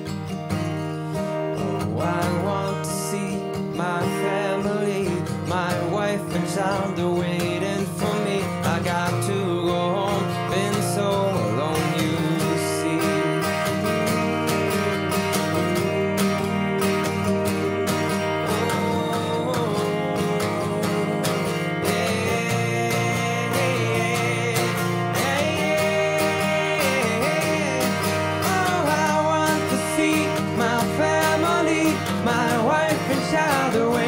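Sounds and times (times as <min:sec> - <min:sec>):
acoustic guitar strumming: 0:00.0 - 0:34.0
person singing wordlessly: 0:01.6 - 0:34.0.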